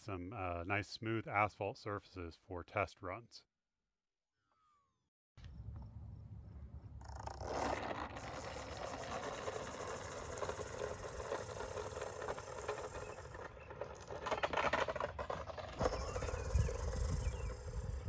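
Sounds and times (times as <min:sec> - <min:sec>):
tyre noise on asphalt: 0:05.4 - 0:18.0
electric motor whine: 0:07.0 - 0:13.9, 0:15.8 - 0:18.0
wind rumble on microphone: 0:15.8 - 0:18.0.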